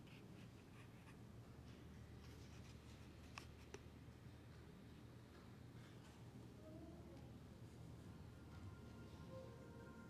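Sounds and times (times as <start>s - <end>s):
faint ticks and rustles: 0.0s - 6.5s.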